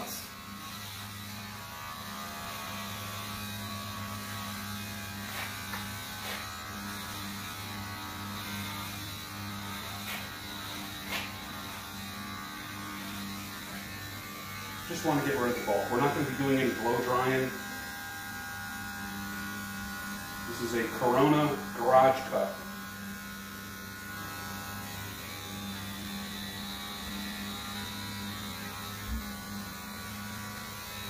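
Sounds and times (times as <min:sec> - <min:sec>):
electric hair clippers humming: 0:00.0 - 0:31.0.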